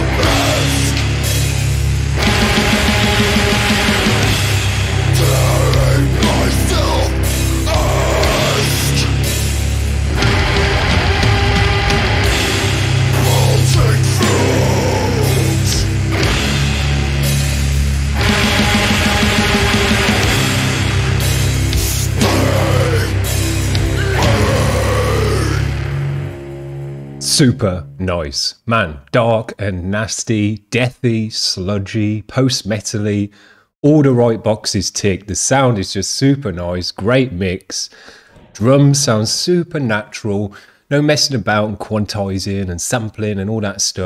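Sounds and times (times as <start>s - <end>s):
distorted metal band playing: 0.0s - 27.5s
heavy metal music: 0.0s - 27.6s.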